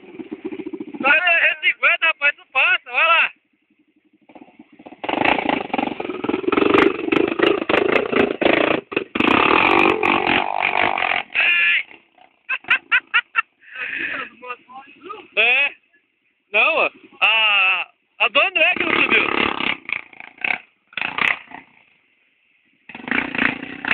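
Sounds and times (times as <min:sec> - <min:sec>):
motorcycle engine revving: 0:00.0 - 0:15.7, 0:16.5 - 0:23.9.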